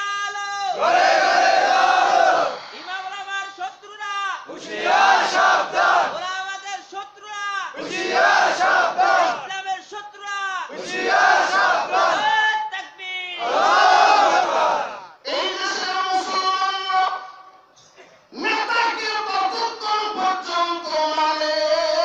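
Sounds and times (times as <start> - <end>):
crowd answering in unison: 0.8 - 3.0, 4.5 - 6.2, 7.8 - 9.4, 10.7 - 12.3, 13.4 - 17.2.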